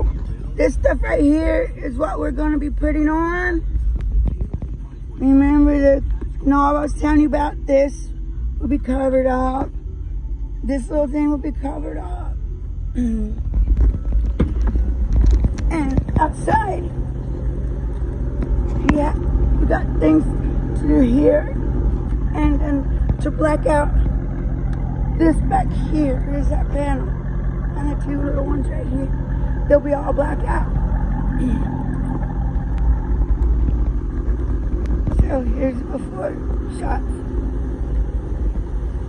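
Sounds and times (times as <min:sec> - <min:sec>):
car engine idling: 0:00.0 - 0:39.0.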